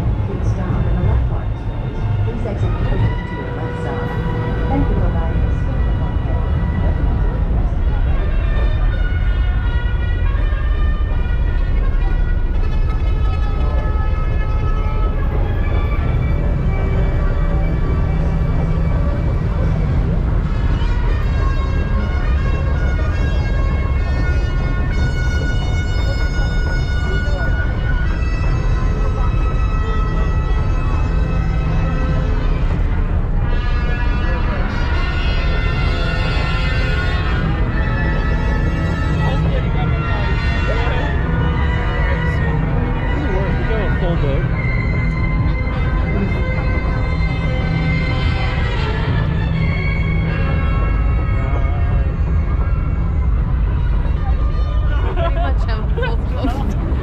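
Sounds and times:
ride music with sustained notes: 0.0s - 57.0s.

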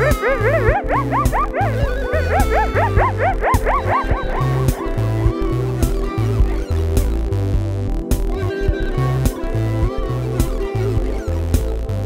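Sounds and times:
yipping dog-like calls: 0.0s - 4.6s
electronic music with synth bass: 0.0s - 12.0s.

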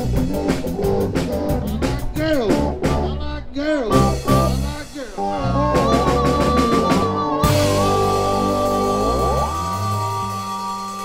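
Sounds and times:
low bass notes: 0.0s - 11.0s
rock band sustained note: 0.0s - 11.0s.

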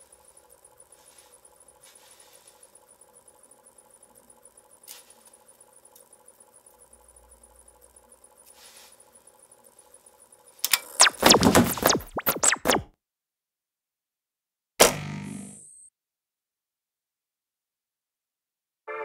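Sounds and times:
faint steady hum: 0.0s - 12.5s
soft rustle: 1.0s - 2.7s, 8.5s - 9.0s
scratchy sweeping sound effect: 11.0s - 12.9s.

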